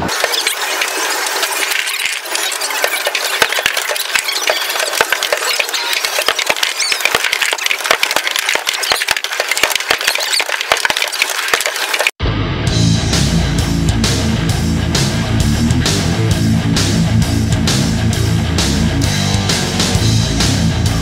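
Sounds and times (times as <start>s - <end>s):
electronic arcade din: 0.0s - 11.2s
balls clattering and knocking: 0.0s - 12.2s.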